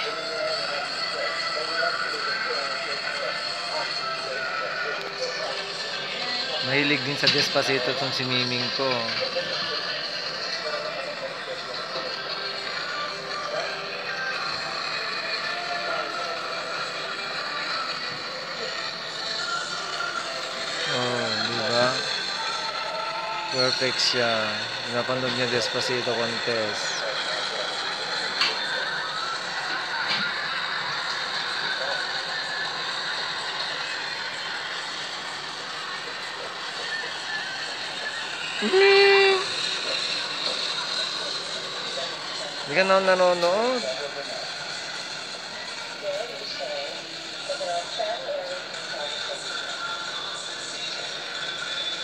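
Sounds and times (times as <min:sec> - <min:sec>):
music through small phone speaker: 0:00.0 - 0:42.8, 0:43.4 - 0:52.0.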